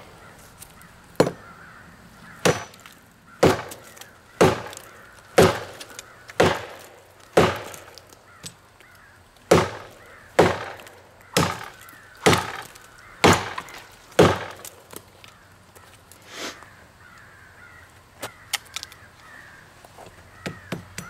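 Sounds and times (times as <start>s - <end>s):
machete chopping tree trunk: 1.2s - 1.5s, 2.4s - 8.6s, 9.5s - 15.1s.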